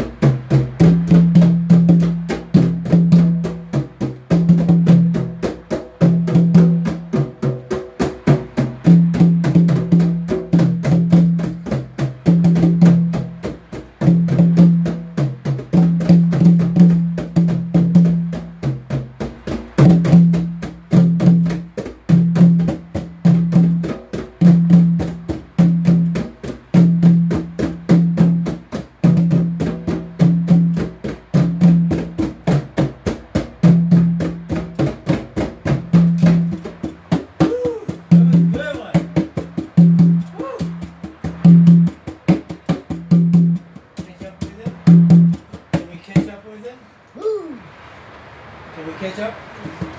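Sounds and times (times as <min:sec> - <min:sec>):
hand drums fast rhythm: 0:00.0 - 0:46.4.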